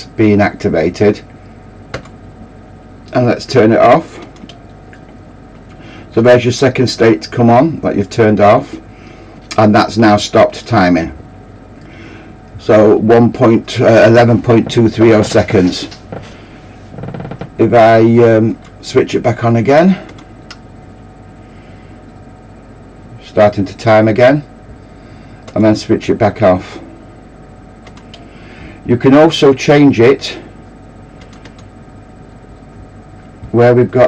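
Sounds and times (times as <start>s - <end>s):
steady low hum: 0.0s - 34.0s
computer mouse clicks: 27.8s - 28.2s, 31.2s - 31.7s.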